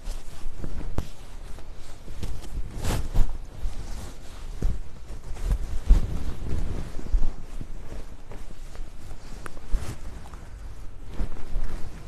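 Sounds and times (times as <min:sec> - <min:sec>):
fabric rustling: 0:00.0 - 0:12.0
microphone handling rumble: 0:02.2 - 0:12.0.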